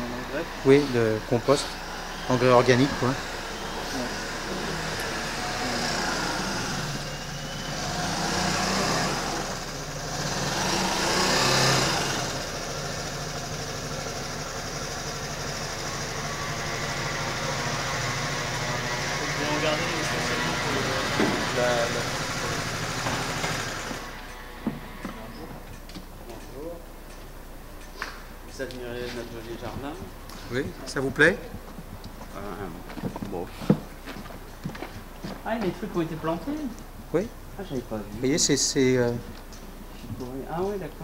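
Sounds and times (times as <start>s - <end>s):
passing traffic: 0.0s - 41.0s
vehicle engine humming: 0.0s - 41.0s.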